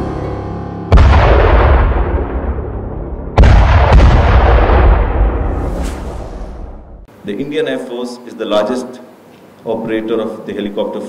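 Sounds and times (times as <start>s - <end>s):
explosion blast: 0.9s - 7.1s
sharp hit: 0.9s - 7.1s.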